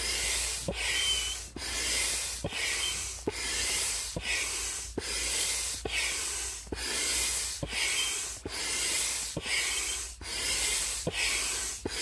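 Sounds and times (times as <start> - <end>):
hand pump air rushing: 0.0 - 12.0
thin whistle: 0.8 - 1.4, 2.6 - 3.1, 7.8 - 8.3.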